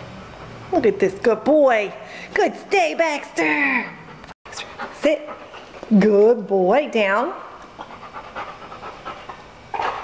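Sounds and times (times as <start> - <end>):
dog panting: 0.0 - 1.4, 3.9 - 6.2, 7.6 - 10.0.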